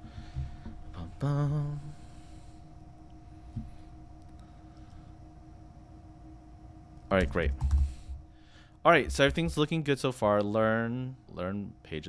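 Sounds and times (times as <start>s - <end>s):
thin steady hum: 0.0s - 12.0s.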